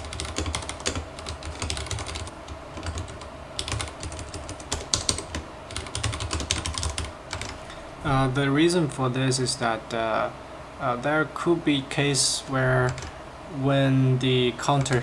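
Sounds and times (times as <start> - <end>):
mechanical keyboard typing: 0.0 - 7.6, 12.8 - 13.1, 14.7 - 15.0.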